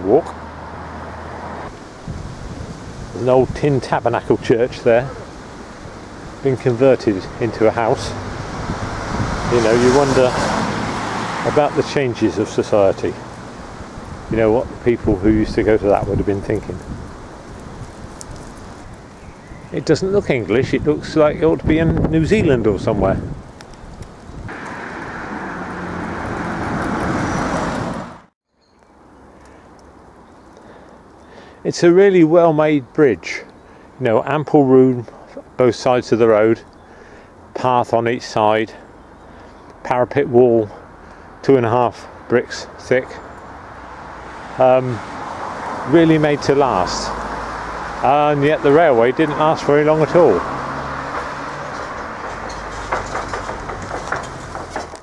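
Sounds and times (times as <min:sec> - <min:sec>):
vehicle passing on road: 0:00.0 - 0:31.2, 0:40.6 - 0:55.0
car driving past: 0:00.3 - 0:02.8, 0:05.1 - 0:14.3, 0:24.5 - 0:28.3, 0:43.4 - 0:55.0.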